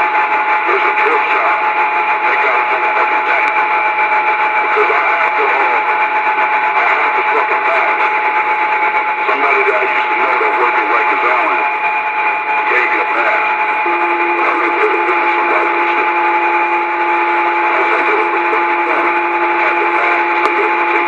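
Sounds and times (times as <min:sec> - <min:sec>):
radio static with high whistle: 0:00.6 - 0:06.0, 0:06.8 - 0:08.1, 0:09.2 - 0:21.0
low steady tone: 0:13.8 - 0:20.9.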